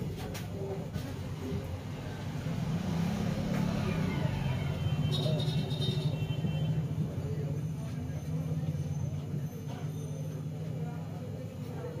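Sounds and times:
road traffic rumble: 0:00.8 - 0:12.0
vehicle engine passing: 0:01.8 - 0:06.2.

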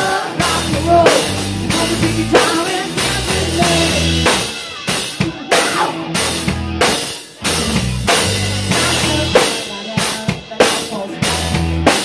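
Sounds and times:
rock drum kit: 0:00.0 - 0:12.0
low bass notes: 0:00.3 - 0:04.8, 0:05.8 - 0:09.4, 0:11.2 - 0:12.0.

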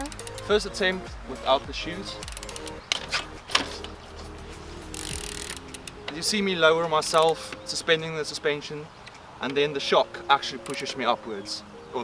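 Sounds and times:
bike freehub clicking: 0:00.0 - 0:00.9, 0:02.1 - 0:07.8, 0:10.6 - 0:11.0
background music: 0:00.0 - 0:12.0.

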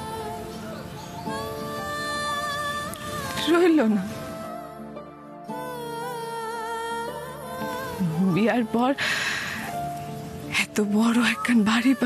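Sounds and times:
slow sad background music: 0:00.0 - 0:12.0.

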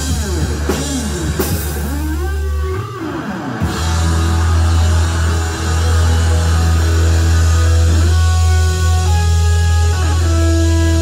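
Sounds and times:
electric guitar: 0:00.0 - 0:11.0.

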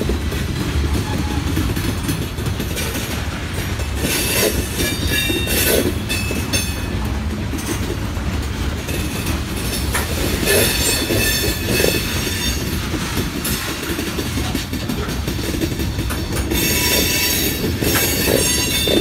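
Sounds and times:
freight train rumbling past: 0:00.0 - 0:19.0
wheels clacking on rail: 0:00.0 - 0:19.0.

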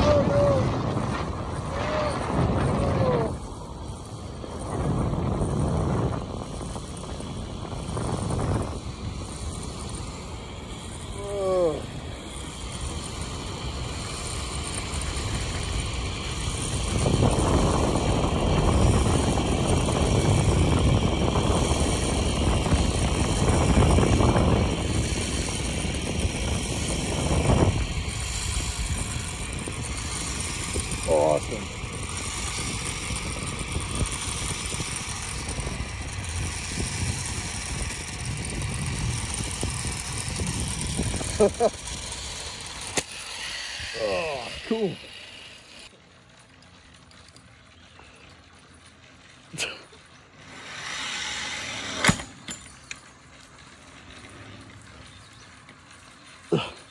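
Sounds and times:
falling voice sound: 0:00.0 - 0:00.8
rushing air: 0:00.0 - 0:45.9, 0:49.6 - 0:53.0
zip line trolley whirring on cable: 0:00.0 - 0:56.9.

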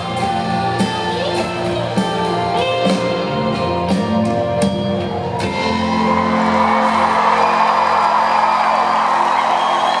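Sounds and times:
crowd cheering and whooping: 0:04.9 - 0:10.0.

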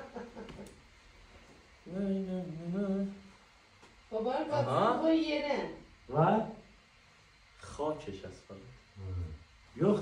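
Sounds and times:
man humming: 0:01.8 - 0:03.4, 0:09.0 - 0:09.5.

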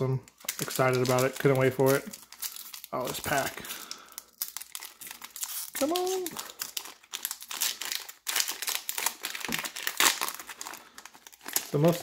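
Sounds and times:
foil wrapper crinkling: 0:00.1 - 0:12.0.

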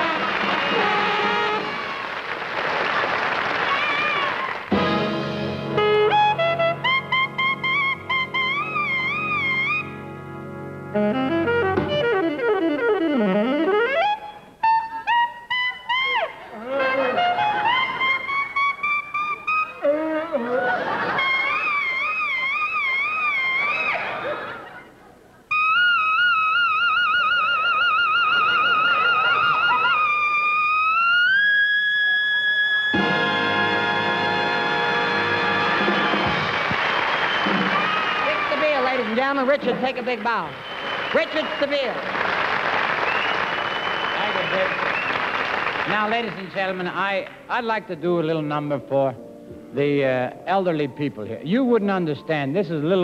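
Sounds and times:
solo saxophone: 0:00.0 - 0:02.2, 0:05.7 - 0:10.0, 0:10.8 - 0:20.8.

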